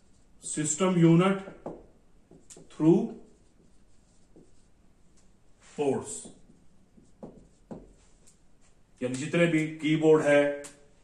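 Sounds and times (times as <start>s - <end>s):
handwriting scratching: 2.3s - 5.3s, 6.2s - 8.8s
person speaking: 2.4s - 4.7s, 5.6s - 6.6s, 8.9s - 10.9s.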